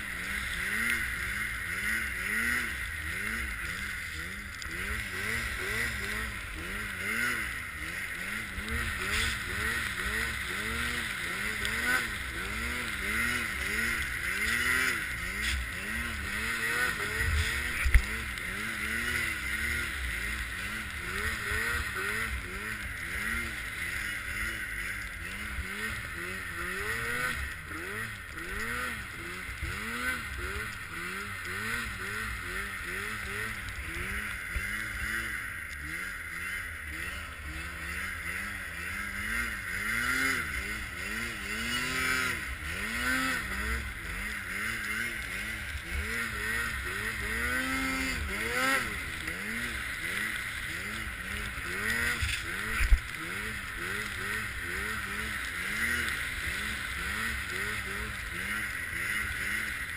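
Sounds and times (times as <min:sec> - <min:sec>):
snowmobile engine revving: 0:00.0 - 0:59.9.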